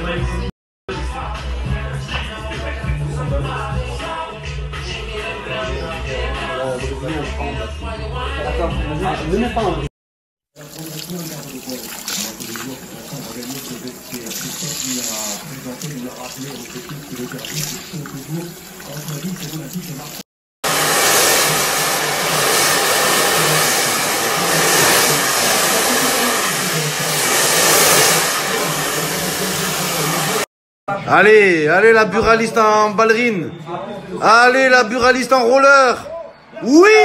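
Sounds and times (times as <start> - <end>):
hand shower spraying water on hair: 10.6 - 30.5.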